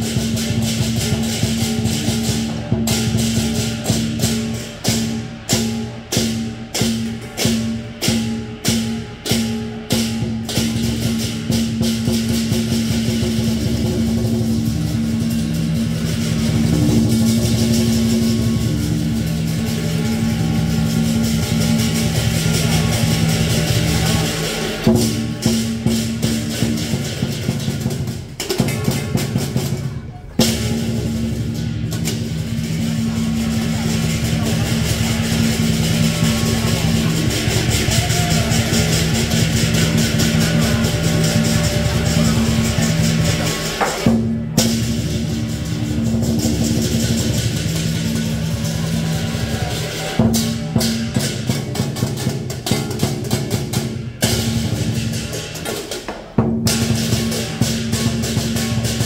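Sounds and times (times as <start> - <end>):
cymbals clashing: 0.0 - 59.0
drum beaten fast: 0.0 - 59.0
ringing gong: 0.1 - 28.0.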